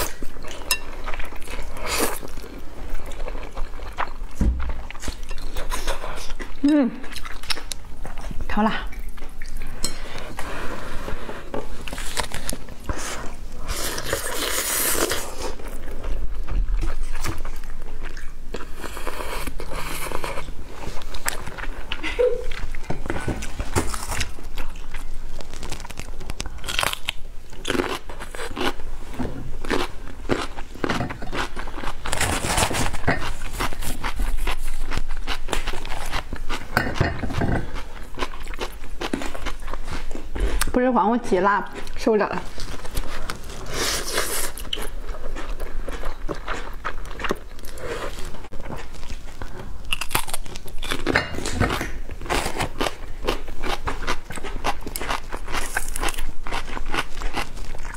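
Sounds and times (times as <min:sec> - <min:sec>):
mouth slurping and chewing noodles: 0:00.0 - 0:22.8, 0:41.8 - 0:57.9.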